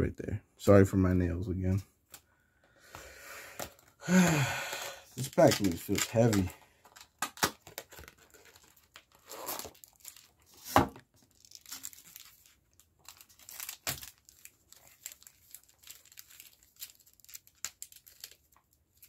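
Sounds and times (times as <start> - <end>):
foil wrapper tearing and crinkling: 3.6 - 19.0.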